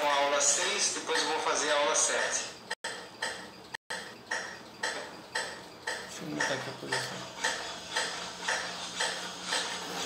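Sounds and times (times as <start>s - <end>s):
metronome ticking: 3.2s - 9.2s.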